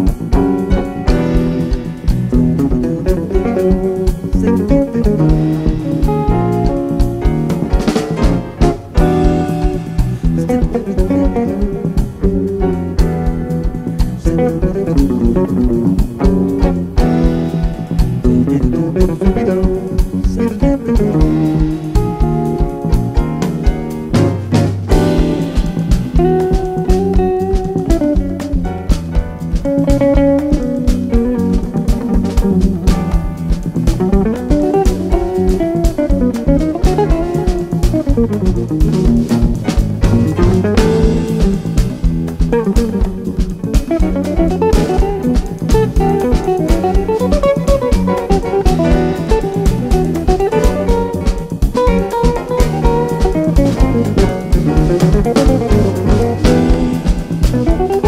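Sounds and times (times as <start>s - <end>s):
drum kit groove: 0.0s - 58.0s
electric bass: 0.0s - 58.0s
electric guitar melody: 0.0s - 58.0s.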